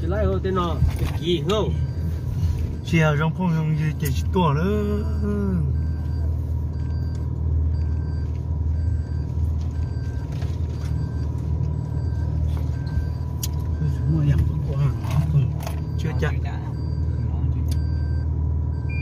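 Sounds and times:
car cabin rumble on dirt track: 0.0 - 1.6
faint repeating beep: 0.1 - 19.0.

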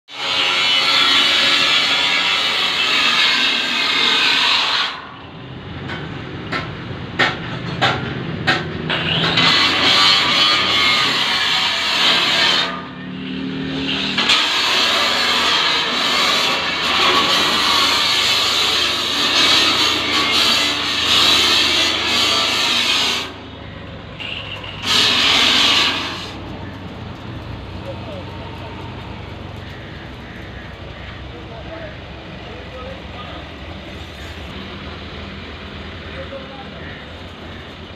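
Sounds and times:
workshop tools grinding: 0.1 - 5.2, 5.8 - 23.5, 24.1 - 31.3.

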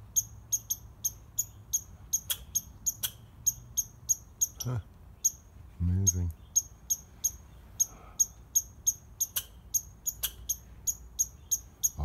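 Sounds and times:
squirrel chirping: 0.0 - 12.0.

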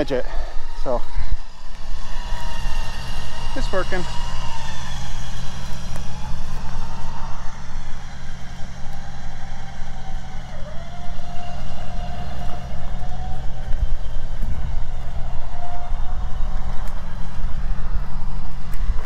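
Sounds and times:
electric winch motor whine: 0.0 - 19.0
steady low rumble: 0.0 - 19.0.

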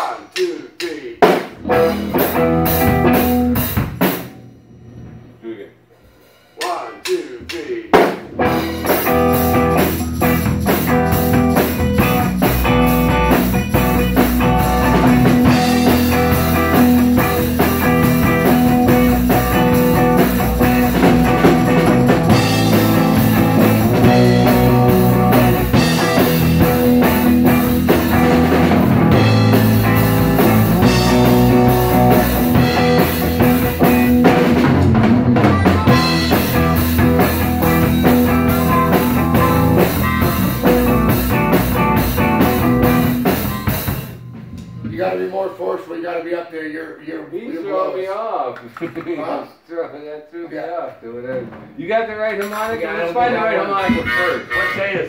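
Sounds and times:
drum kit: 0.0 - 45.9
electric guitar: 1.6 - 5.2, 8.3 - 44.9
amplified harmonica: 53.9 - 55.0.

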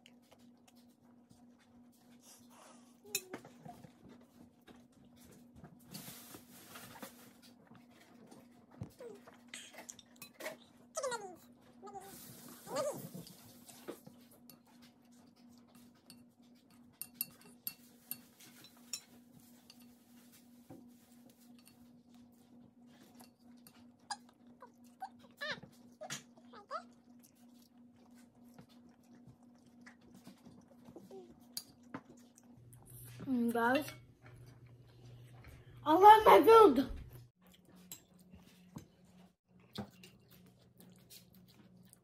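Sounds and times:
chewing: 0.0 - 5.6, 7.2 - 19.9, 21.5 - 33.2, 39.5 - 42.0.

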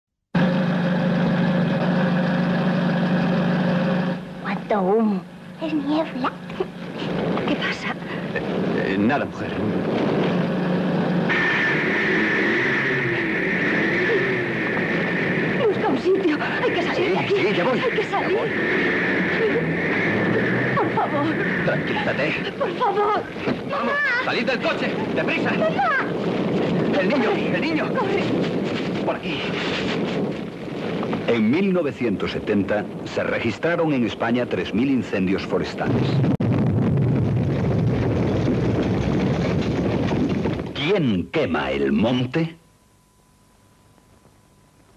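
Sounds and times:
car engine and road noise: 0.4 - 35.3
large fire burning: 0.4 - 42.3
high-pitched tone: 11.2 - 26.2.

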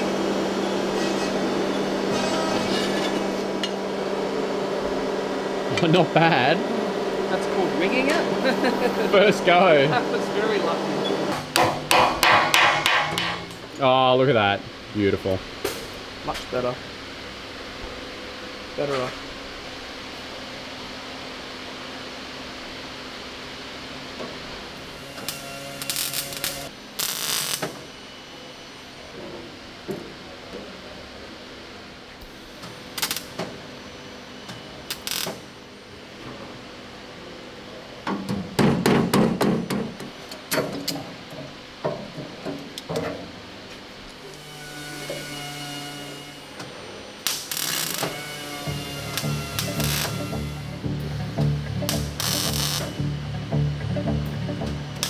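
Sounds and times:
background music: 49.7 - 55.0.

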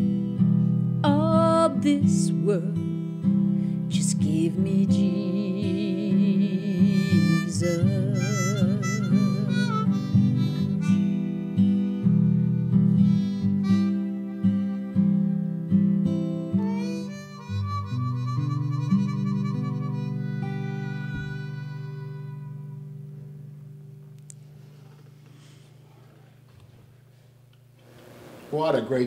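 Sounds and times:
strummed acoustic guitar: 0.0 - 24.8
harmonica with vibrato: 4.9 - 23.2.

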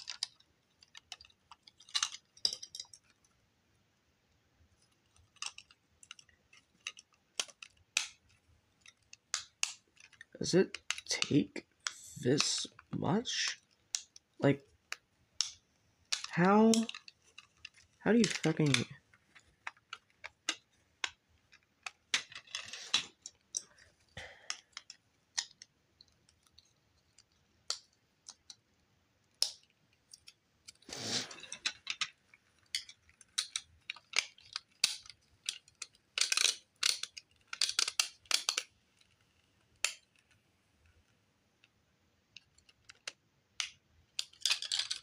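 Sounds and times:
plastic bricks clicking and clattering: 0.0 - 3.3, 4.8 - 28.6, 29.3 - 45.0.

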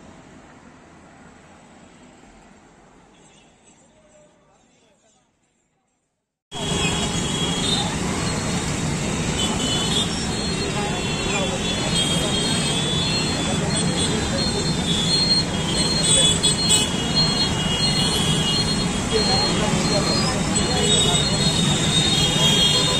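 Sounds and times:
crowd talking: 6.6 - 22.9.

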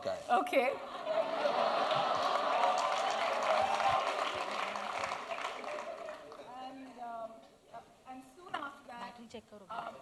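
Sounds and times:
audience applauding: 1.1 - 6.5.

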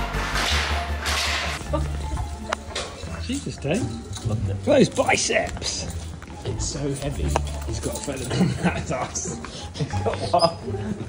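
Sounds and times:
background music with bass line: 0.0 - 3.8.

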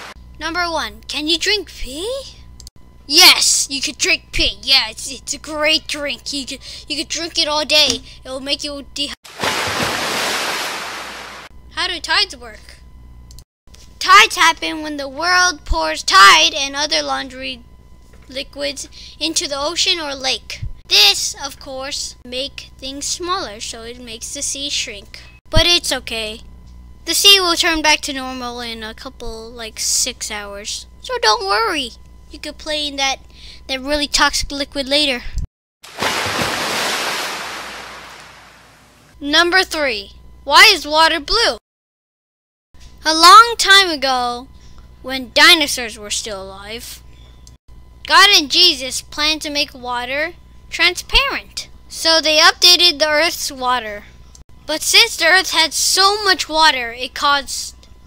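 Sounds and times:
ocean surf surge: 9.3 - 11.5, 35.9 - 39.0.

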